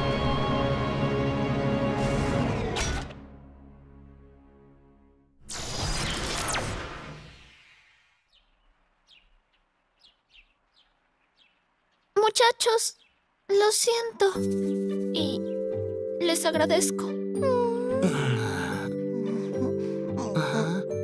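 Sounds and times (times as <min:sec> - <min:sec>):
cartoon background music: 0:14.1 - 0:21.0.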